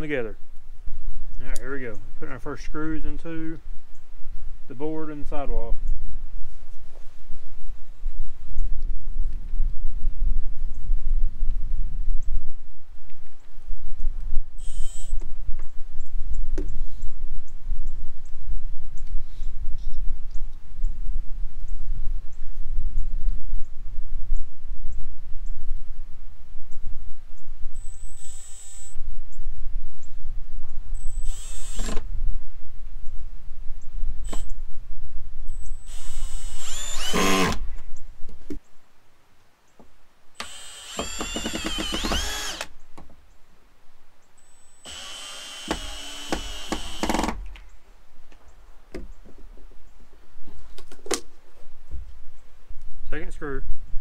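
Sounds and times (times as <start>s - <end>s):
cordless drill driving screws: 14.6s - 15.1s, 27.9s - 29.0s, 31.1s - 32.0s, 35.8s - 37.6s, 40.4s - 42.7s, 44.8s - 47.4s.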